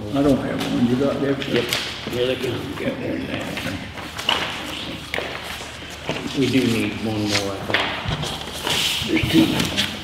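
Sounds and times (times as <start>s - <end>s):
paper rustling: 0.2s - 10.0s.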